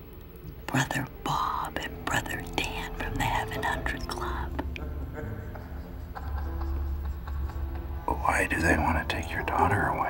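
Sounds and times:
woman whispering: 0.7 - 4.6.

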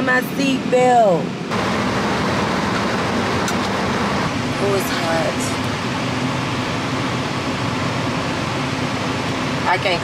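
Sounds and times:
car air conditioning blower: 1.1 - 10.0.

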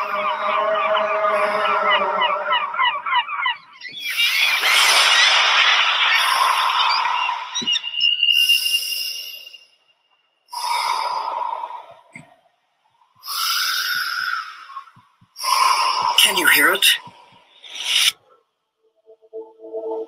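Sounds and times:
seabirds calling: 0.0 - 8.3.

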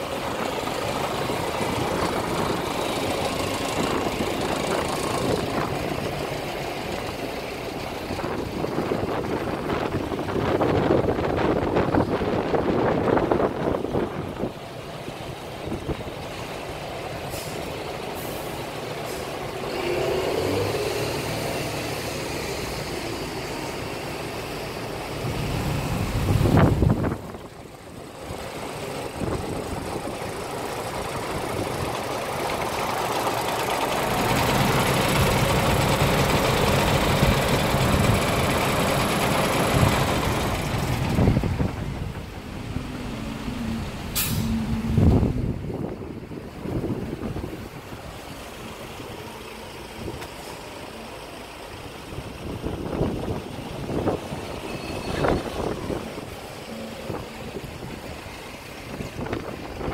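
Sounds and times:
heavy vehicles running: 0.0 - 59.9
wind on microphone: 25.2 - 27.5, 39.8 - 48.2.

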